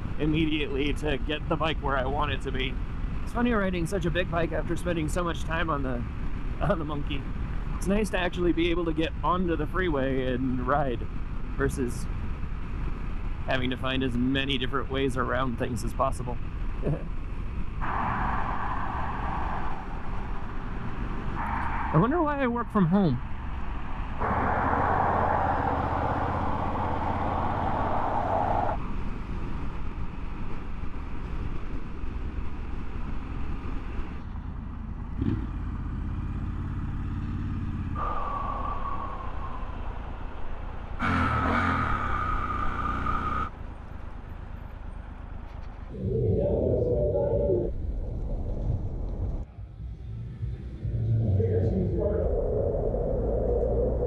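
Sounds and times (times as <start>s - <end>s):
motorcycle engine rumble: 0.0s - 54.0s.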